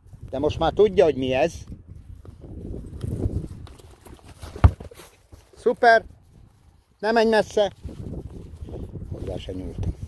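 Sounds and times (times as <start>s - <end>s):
heavy hoof thud: 2.2s - 5.7s
horse hoofbeats on grass: 2.2s - 6.0s.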